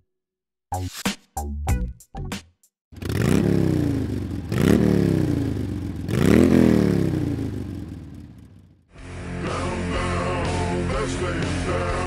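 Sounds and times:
motorcycle engine revving: 2.9s - 8.9s.

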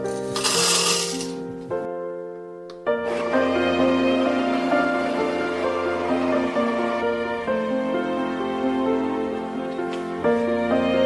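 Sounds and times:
coffee beans rattling into hopper: 0.0s - 1.4s
soft piano music: 0.0s - 11.0s.

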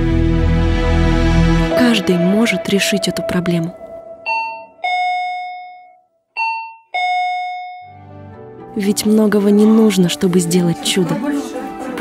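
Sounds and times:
two-tone doorbell chime: 4.2s - 8.0s.

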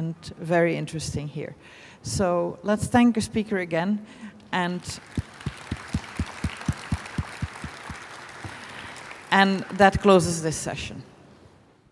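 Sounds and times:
audience applauding: 4.8s - 9.8s
close hand claps: 4.9s - 9.8s.

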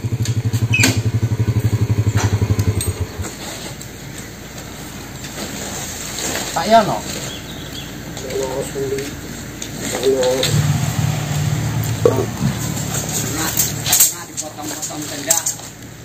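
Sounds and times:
low steady engine hum: 0.0s - 16.0s
men talking: 6.4s - 15.8s.

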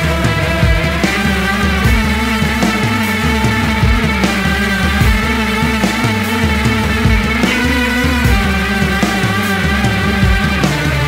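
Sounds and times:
drums keeping steady beat: 0.0s - 11.0s
moving bass line: 0.0s - 11.0s
sustained guitar chords: 0.0s - 11.0s.

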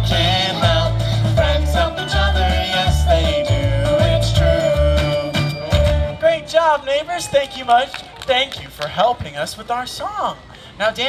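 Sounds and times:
children's sing-along song: 0.0s - 6.9s.

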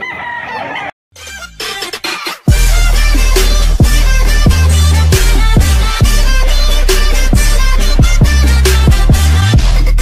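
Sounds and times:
rooster crowing: 0.0s - 0.9s.

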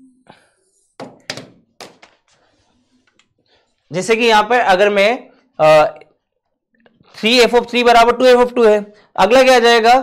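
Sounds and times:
marker knocking on whiteboard: 1.0s - 2.2s.

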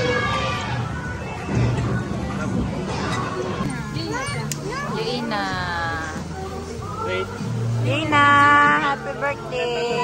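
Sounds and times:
background music: 0.0s - 10.0s
restaurant chatter: 0.0s - 10.0s.

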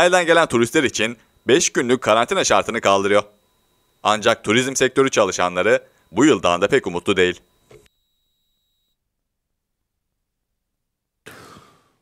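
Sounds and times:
person drawing breath: 11.3s - 12.0s.

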